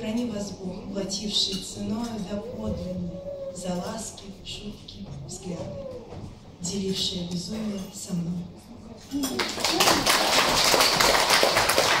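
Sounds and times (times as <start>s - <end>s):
audience applauding: 9.4s - 12.0s.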